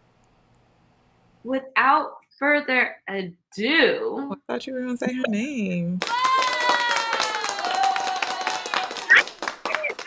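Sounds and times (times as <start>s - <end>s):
woman cheering long high note: 6.0s - 8.9s
fast hand clapping: 6.0s - 10.0s.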